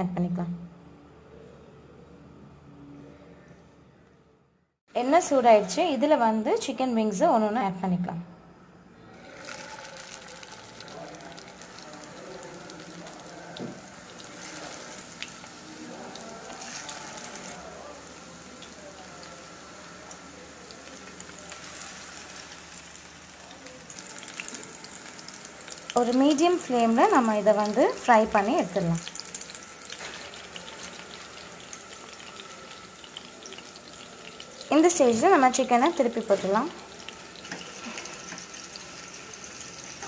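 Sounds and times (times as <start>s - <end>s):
chicken deep-frying in oil: 9.2s - 40.0s.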